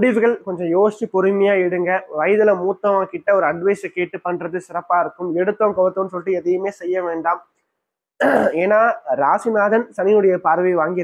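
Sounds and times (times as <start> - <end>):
narrator talking: 0.0 - 7.4.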